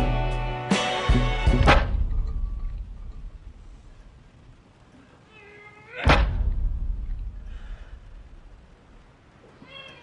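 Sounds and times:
sudden loud hit: 1.5 - 2.5, 6.0 - 7.6
deep booming bass: 6.1 - 7.5.

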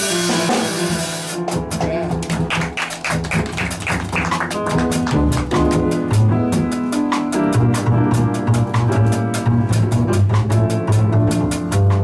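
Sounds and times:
upright bass: 0.0 - 2.5, 3.3 - 12.0
drums steady beat: 0.0 - 12.0
grand piano: 0.0 - 12.0.

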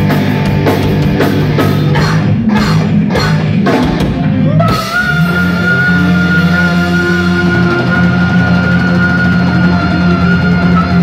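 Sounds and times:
hard rock band playing: 0.0 - 11.0.

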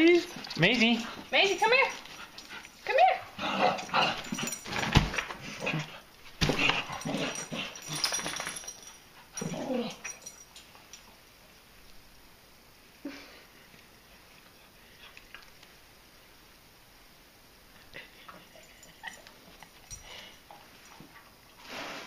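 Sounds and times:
thump and scuffling: 4.6 - 5.4, 6.3 - 6.9.

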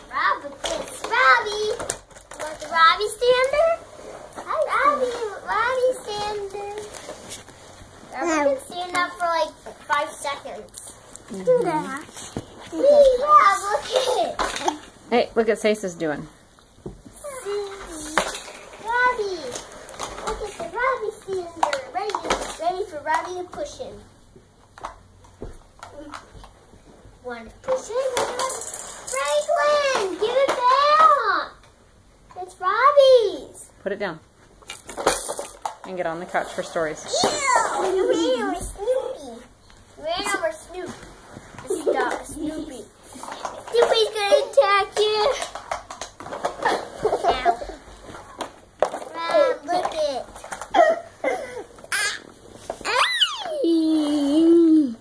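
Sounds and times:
plastic toys clicking and knocking: 0.0 - 3.7, 12.8 - 14.9, 17.2 - 23.9, 24.6 - 26.6, 27.6 - 31.8, 34.6 - 39.0, 41.6 - 50.8.

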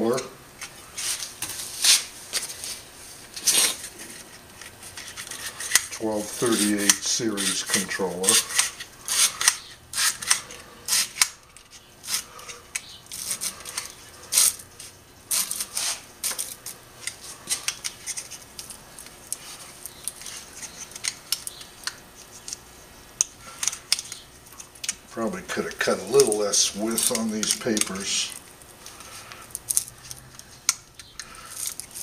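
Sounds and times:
paper scraping through metal slots: 4.8 - 11.3, 25.2 - 28.4.

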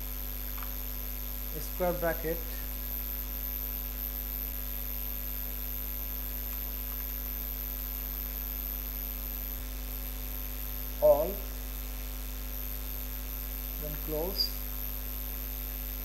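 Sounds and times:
electrical mains hum: 0.0 - 16.0
high whine: 0.0 - 16.0.

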